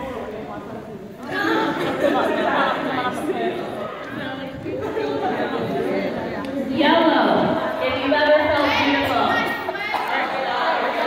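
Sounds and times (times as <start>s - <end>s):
crowd of women chattering: 0.0s - 11.0s.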